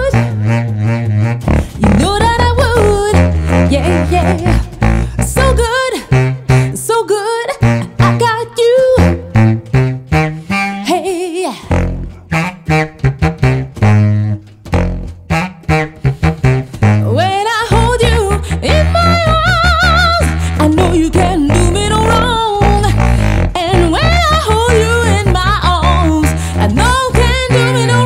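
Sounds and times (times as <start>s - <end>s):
vibrato melody line: 0.0s - 6.6s, 16.5s - 28.0s
contrabass saxophone bass line: 0.0s - 28.0s.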